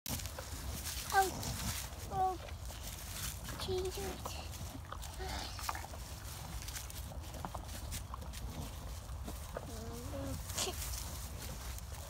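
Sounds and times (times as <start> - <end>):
young child vocal sound: 9.8 - 11.0.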